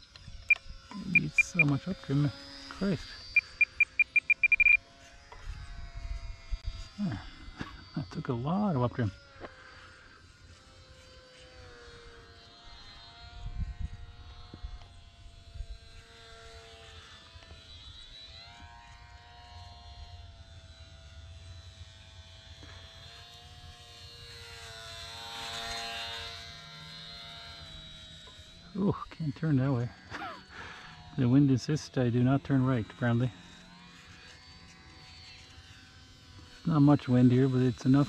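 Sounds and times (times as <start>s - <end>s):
model plane motor buzzing: 0.0s - 38.0s.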